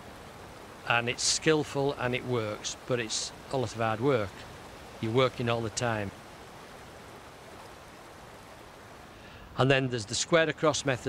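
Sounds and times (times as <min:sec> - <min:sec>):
river running over rocks: 0:00.0 - 0:11.0.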